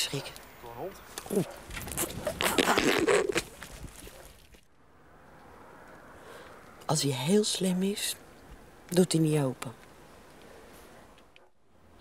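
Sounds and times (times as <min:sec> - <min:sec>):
jacket rubbing against microphone: 0:01.7 - 0:03.6.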